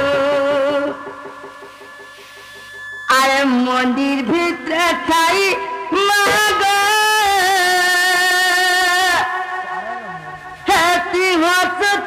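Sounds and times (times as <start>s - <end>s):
thin steady high tone: 0.0s - 6.7s.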